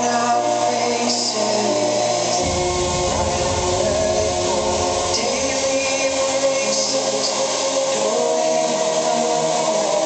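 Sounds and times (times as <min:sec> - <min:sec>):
held synth chords: 0:01.7 - 0:08.2
hardcore electronic dance music: 0:01.7 - 0:08.3
deep bass: 0:02.4 - 0:07.2.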